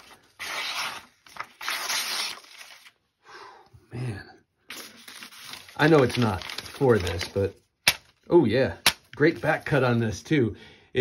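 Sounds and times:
knife slicing paper: 0.0 - 2.9.

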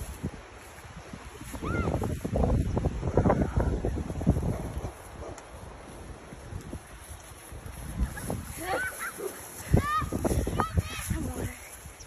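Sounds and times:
footsteps through tall grass: 0.0 - 2.9, 4.0 - 12.0
wind buffeting microphone: 0.0 - 12.0.

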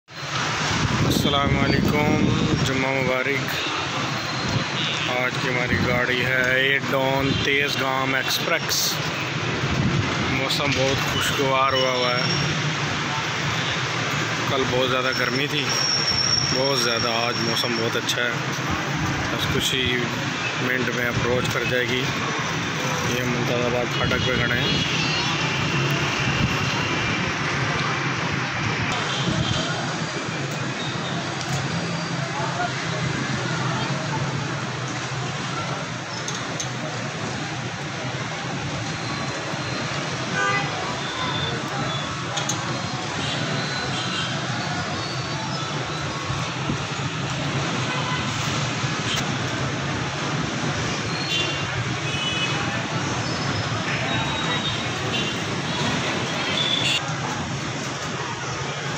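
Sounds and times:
street traffic noise: 0.0 - 58.9
people's voices: 0.8 - 58.9
vehicle horns: 3.5 - 5.3, 40.2 - 42.2, 47.6 - 49.3, 51.1 - 52.7, 53.3 - 57.1.

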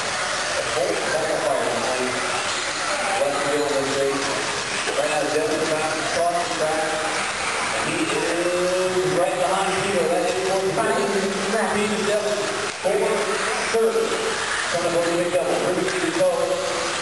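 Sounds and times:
electric toy cars hissing: 0.0 - 17.0.

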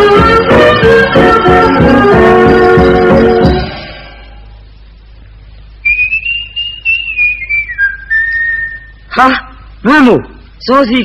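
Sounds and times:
person whistling: 5.8 - 9.1.

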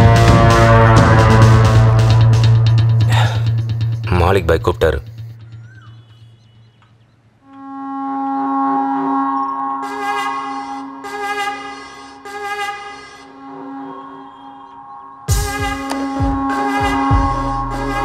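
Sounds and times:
sustained orchestral chord: 7.5 - 18.0.

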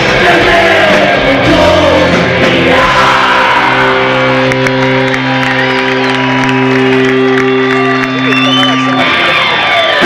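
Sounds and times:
rock band sustained chord: 0.0 - 8.2
crowd cheering and clapping: 0.0 - 10.0.

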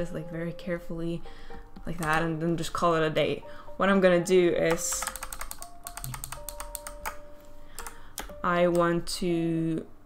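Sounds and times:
quiet piano music: 0.0 - 10.0
keyboard keys clicking: 1.8 - 2.4, 4.7 - 7.2, 7.8 - 9.0.

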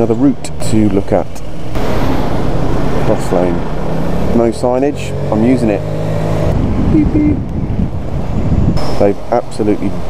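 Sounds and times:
wind buffeting microphone: 1.7 - 10.0.

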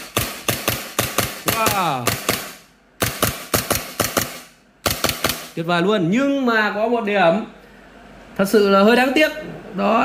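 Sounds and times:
pistol firing rapid shots: 0.0 - 5.6.

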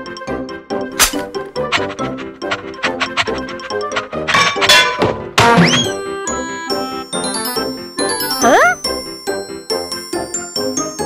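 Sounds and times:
quick rattling run: 1.0 - 5.9
chiming bell-like music: 6.0 - 11.0.

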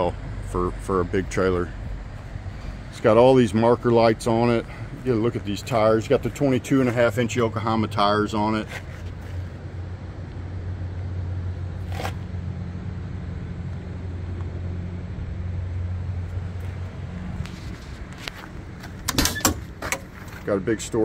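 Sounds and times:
engine idling hum: 0.0 - 21.0
metal door unlatching and opening: 18.9 - 20.2.

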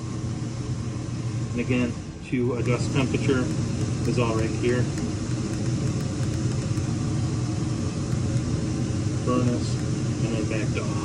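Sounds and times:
air conditioner blower fan running: 0.0 - 11.0.

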